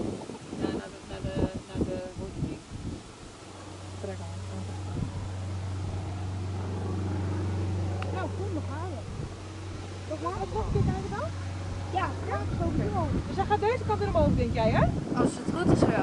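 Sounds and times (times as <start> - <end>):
jet engines low hum: 0.0 - 16.0
people talking: 0.6 - 2.6, 4.0 - 4.9, 8.0 - 9.1, 10.1 - 16.0.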